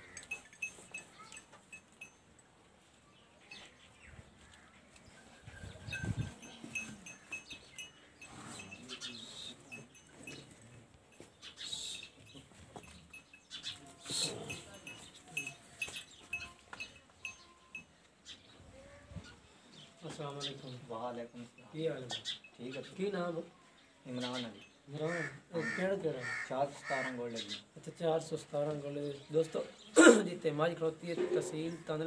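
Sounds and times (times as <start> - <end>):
light clinks: 0.0 - 2.5, 5.9 - 18.0.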